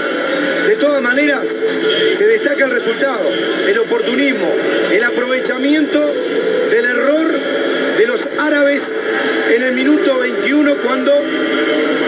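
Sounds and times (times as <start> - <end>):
man commentating: 0.6 - 12.0.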